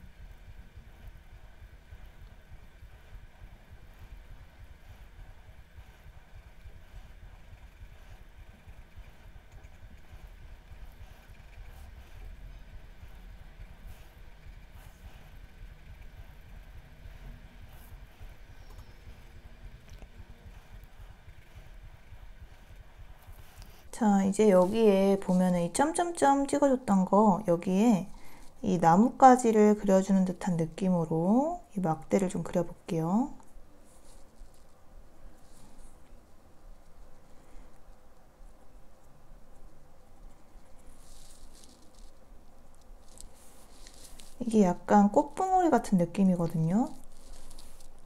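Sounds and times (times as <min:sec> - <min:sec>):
low room hum: 0:00.0 - 0:48.0
pencil scratching on paper: 0:01.0 - 0:26.8.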